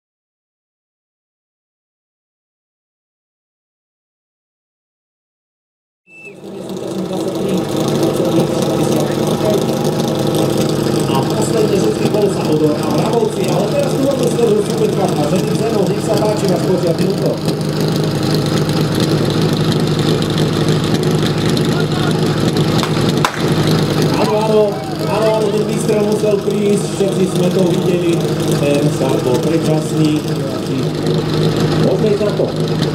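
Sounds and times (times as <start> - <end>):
pump engine idling: 6.2 - 32.9
starting pistol shot: 22.8 - 23.6.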